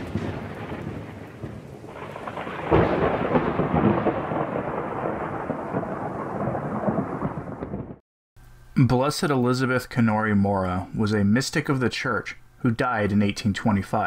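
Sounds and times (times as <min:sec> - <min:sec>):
loud thunder clap: 0:00.0 - 0:08.0
rain: 0:00.0 - 0:08.0
rolling thunder: 0:00.0 - 0:08.0.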